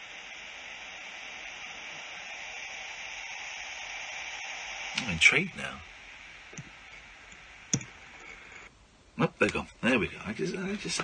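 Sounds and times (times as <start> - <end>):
phone line hiss and static: 0.0 - 11.0.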